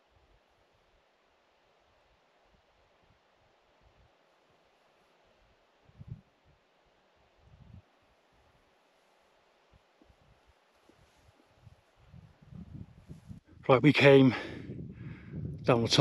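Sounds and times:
faint steady hiss: 0.0 - 16.0
wind rumble on microphone: 5.8 - 6.6, 7.3 - 8.6, 9.7 - 16.0.

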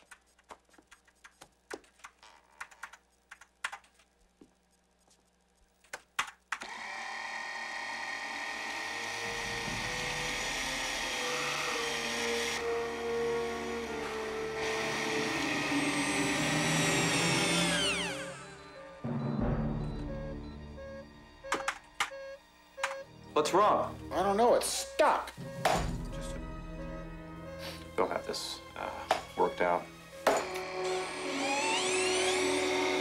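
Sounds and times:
machine whine and hum: 6.6 - 23.2, 29.8 - 33.0
film score: 7.6 - 33.0.

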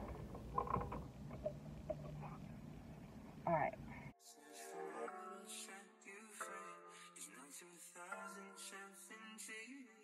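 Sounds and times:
low steady hum: 0.0 - 4.1.

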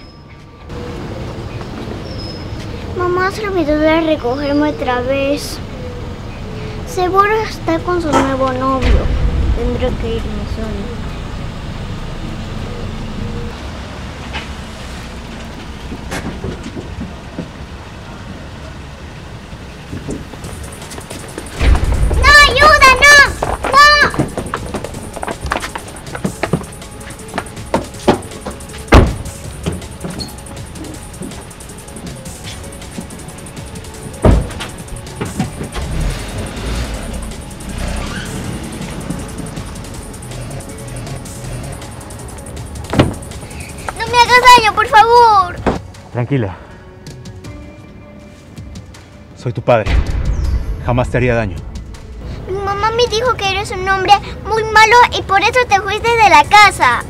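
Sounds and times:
background music: 0.0 - 14.0, 19.3 - 57.0
street noise rumble: 0.0 - 57.0
car engine pulling away: 8.6 - 44.0.

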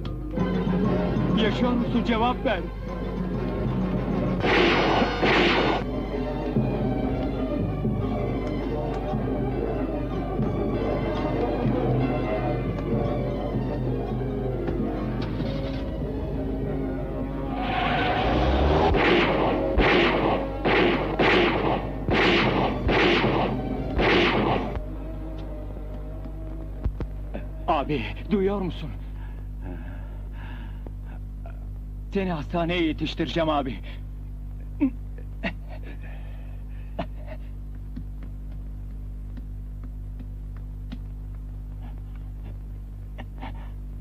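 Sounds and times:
low electrical hum: 0.0 - 44.0
dramatic film music: 0.1 - 26.6
loud gunshots: 4.4 - 5.9, 18.8 - 24.8.

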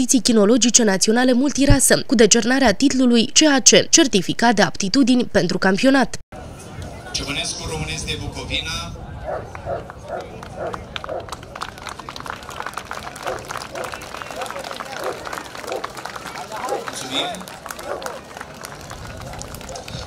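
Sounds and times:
voices of onlookers: 6.4 - 20.0
quick footsteps running: 12.4 - 20.0.

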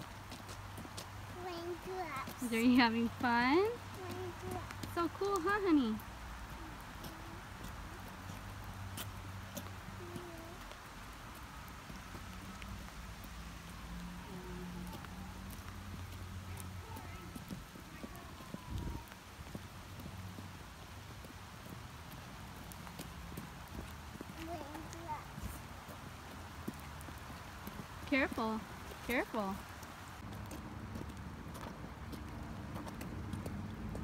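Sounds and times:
rain boots stepping on wet asphalt: 0.0 - 34.0
faint voices: 16.3 - 19.4.

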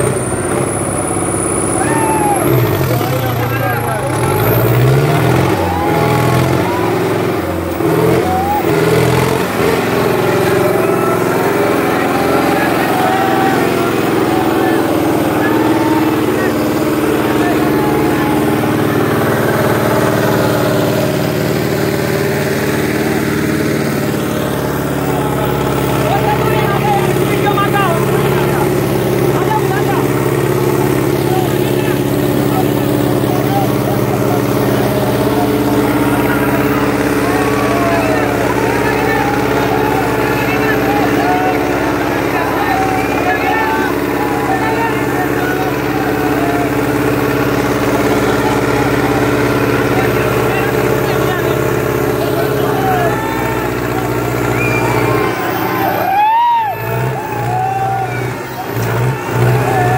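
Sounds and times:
crowd shouting: 0.0 - 59.9
tractor diesel engine running: 0.0 - 59.9.

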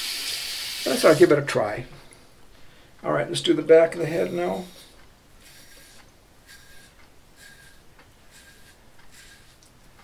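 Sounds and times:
razor scraping stubble: 4.0 - 9.7.

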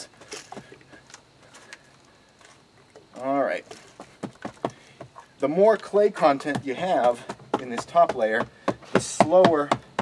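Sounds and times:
hand patting and scraping soil: 0.0 - 10.0.

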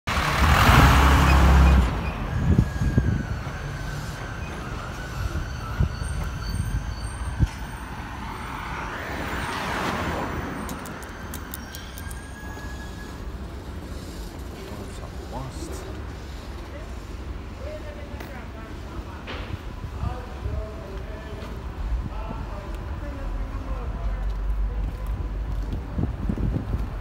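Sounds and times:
traffic noise: 0.0 - 27.0
vehicle passing by: 0.1 - 3.0
large vehicle engine rumble: 0.1 - 27.0.

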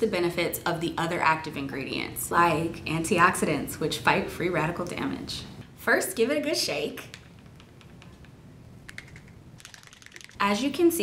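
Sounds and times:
plastic bottle clicks and rattles: 7.1 - 10.4.

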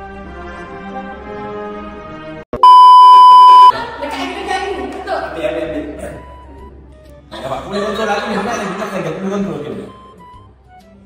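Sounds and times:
loud steady test-tone beep: 2.6 - 3.7.

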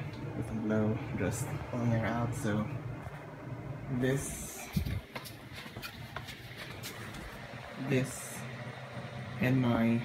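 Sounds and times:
ventilation fans humming: 0.0 - 10.0.

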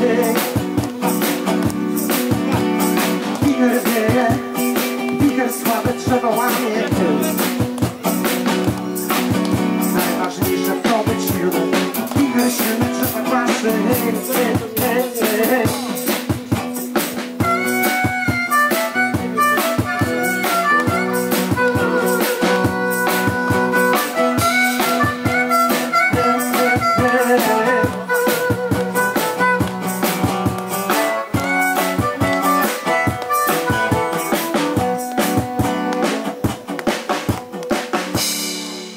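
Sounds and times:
drum kit: 0.0 - 38.9
strummed acoustic guitar: 0.0 - 38.9
harmonica melody: 17.4 - 35.7.

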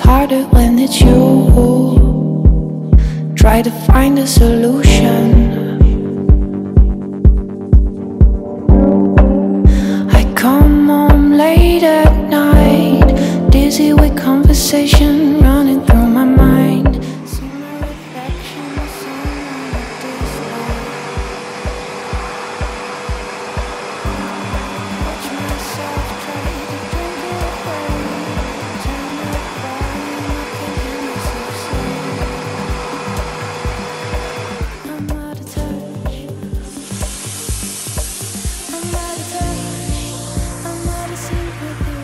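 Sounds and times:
background music with steady beat: 0.0 - 42.0
vacuum cleaner motor drone: 15.0 - 42.0.

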